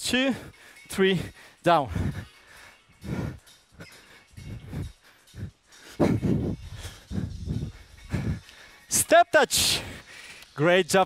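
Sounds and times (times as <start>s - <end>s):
man breathing hard: 0.3s - 9.0s, 9.6s - 10.6s.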